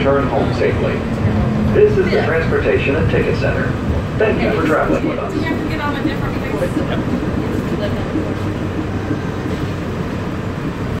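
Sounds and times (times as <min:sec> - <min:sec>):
monorail train rumble and hum: 0:00.0 - 0:11.0.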